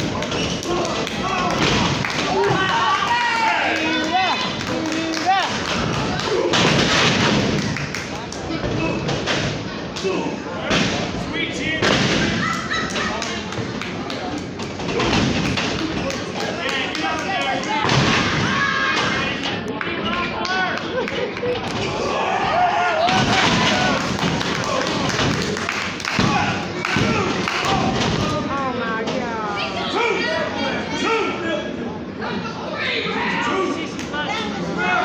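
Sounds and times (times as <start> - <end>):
spectators' raised voices: 0.0 - 35.0
people shouting: 21.9 - 25.1, 26.1 - 28.0.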